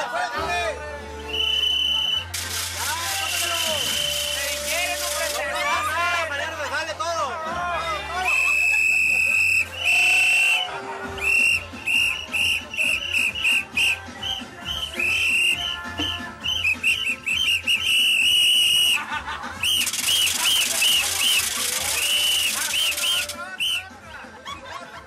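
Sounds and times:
music: 0.0 - 25.0
shrill whistle blasts: 1.3 - 2.3, 3.2 - 5.2, 8.2 - 23.9
loud burst of noise: 2.2 - 5.6, 19.6 - 23.4.

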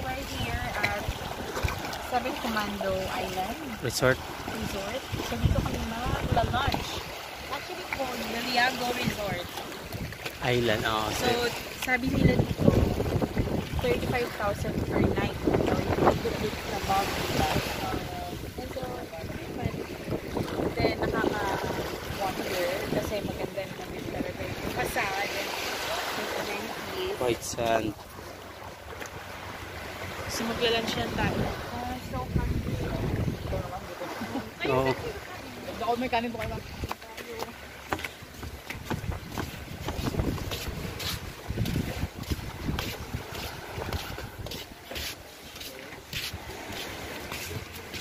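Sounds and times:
voices speaking: 0.0 - 28.1, 30.2 - 38.2
wind buffeting microphone: 0.0 - 28.1, 29.6 - 44.8
footsteps on wooden deck: 36.4 - 48.0.

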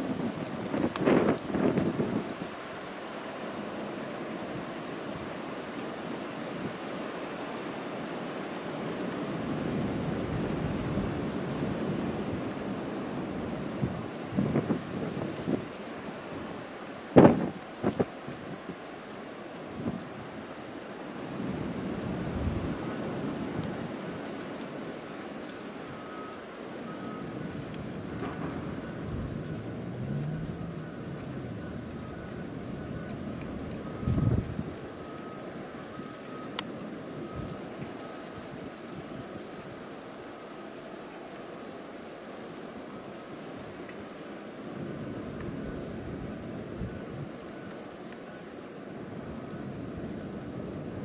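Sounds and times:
blizzard wind gusting: 8.9 - 25.3.

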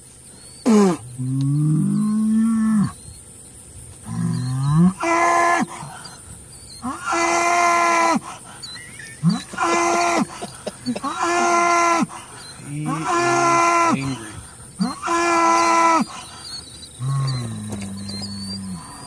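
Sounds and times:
cattle bellowing and mooing: 0.7 - 3.0, 4.0 - 19.0.

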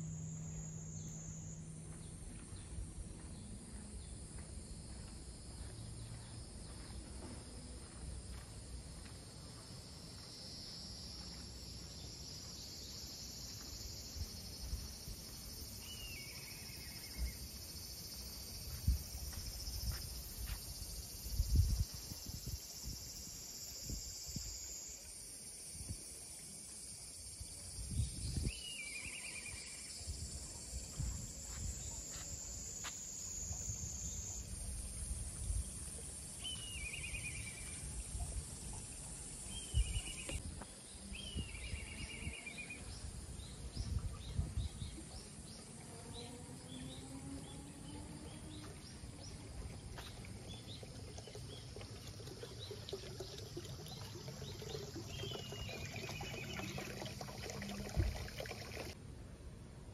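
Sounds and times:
high-pitched insect drone: 10.2 - 40.4.

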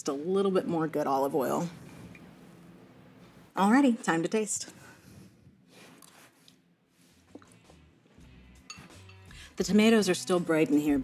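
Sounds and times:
spoon clicking on bowl: 8.7 - 9.4.

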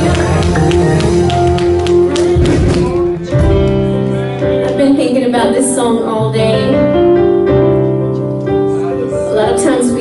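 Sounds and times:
drum kit strikes: 0.0 - 4.1
electric guitar: 0.0 - 10.0.

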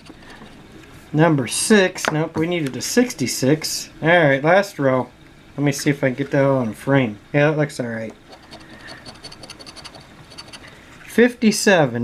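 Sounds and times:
token scraping scratch card: 8.3 - 10.7.

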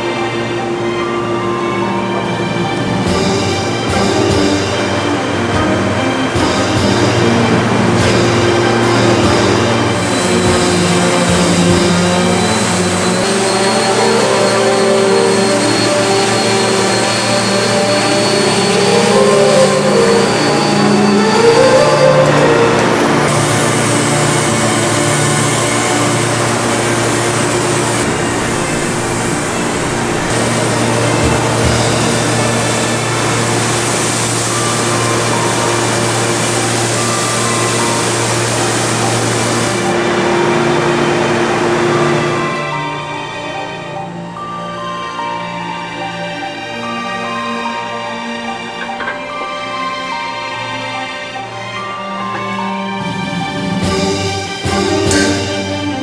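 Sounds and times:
orbital sander on wood: 9.8 - 21.7, 22.7 - 42.3
spray gun hissing: 9.8 - 22.5, 23.2 - 40.5.

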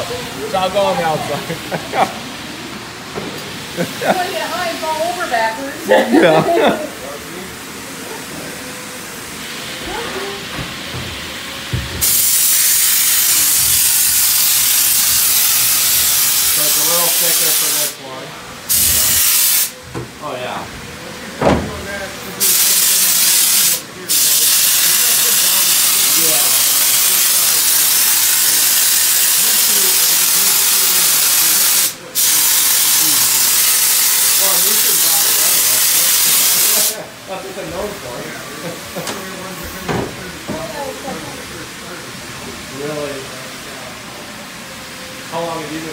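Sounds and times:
spray gun air hiss: 8.6 - 18.0, 18.7 - 19.8, 22.4 - 37.2.

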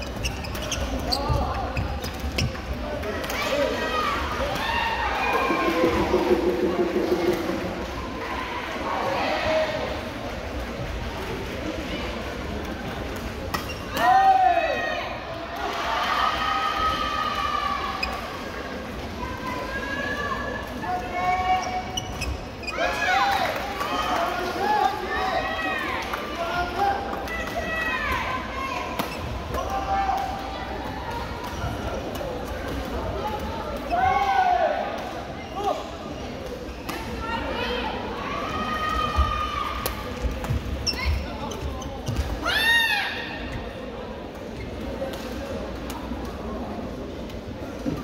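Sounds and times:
voices echoing in a hall: 0.0 - 48.0.

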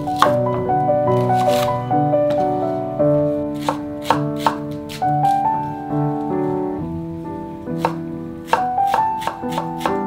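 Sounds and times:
knife chopping on wooden board: 0.0 - 0.4, 1.4 - 1.7, 3.6 - 5.4, 7.8 - 10.0
piano music: 0.0 - 10.0.

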